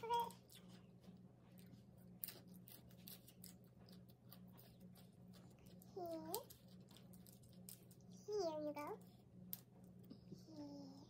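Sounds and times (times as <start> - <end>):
crunchy lettuce leaf crackling: 0.0 - 8.2
low steady hum: 0.0 - 11.0.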